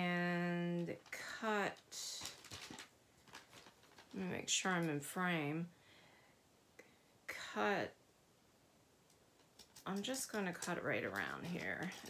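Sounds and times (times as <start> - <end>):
paper bag rustling: 2.0 - 4.2.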